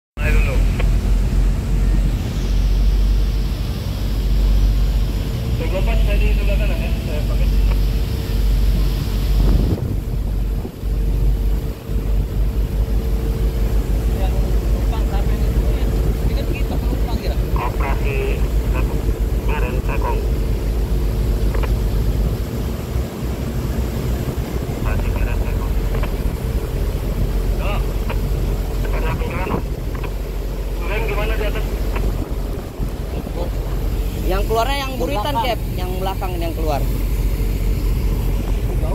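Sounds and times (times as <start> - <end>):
tugboat engine humming: 0.2 - 38.9
wind buffeting microphone: 7.8 - 14.1, 31.7 - 38.9.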